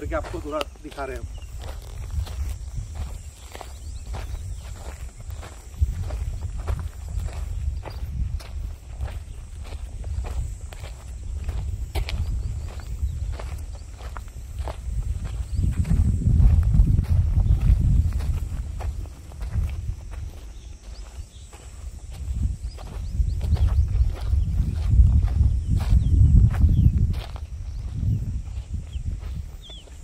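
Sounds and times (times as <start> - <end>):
footsteps walking: 0.0 - 30.0.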